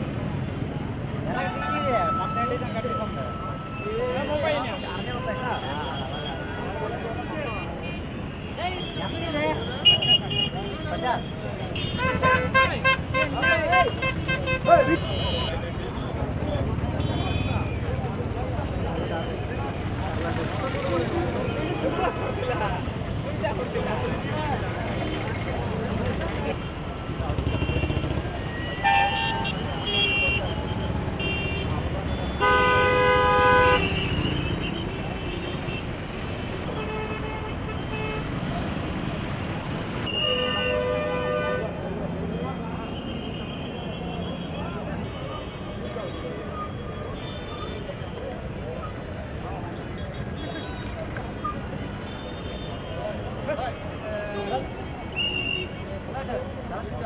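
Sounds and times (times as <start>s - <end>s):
crowd chatter: 0.0s - 57.0s
vehicle horns honking: 7.4s - 16.1s, 17.0s - 17.8s, 27.3s - 35.9s, 40.0s - 41.8s.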